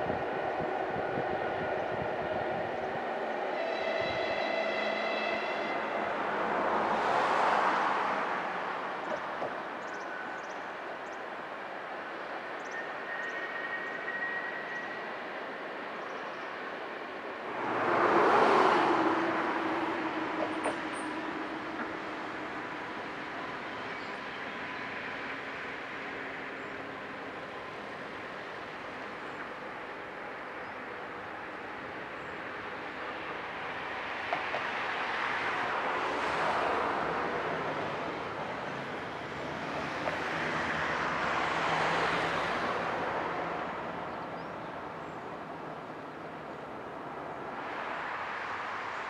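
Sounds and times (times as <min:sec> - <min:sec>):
distant trains rumbling on bridge: 0:00.0 - 0:49.0.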